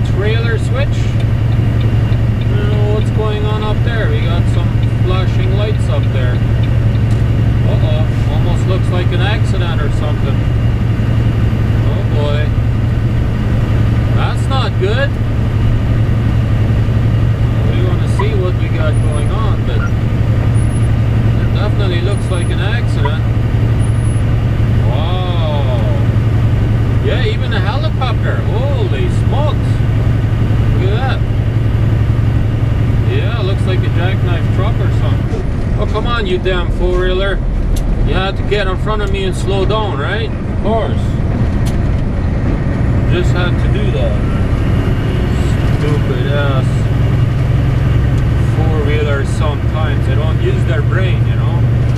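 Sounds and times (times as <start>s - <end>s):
diesel truck engine droning: 0.0s - 51.9s.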